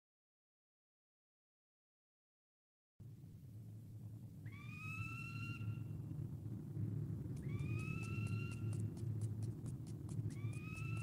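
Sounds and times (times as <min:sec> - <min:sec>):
low steady rumble: 0:03.0 - 0:11.0
quick run of clicks: 0:07.3 - 0:11.0.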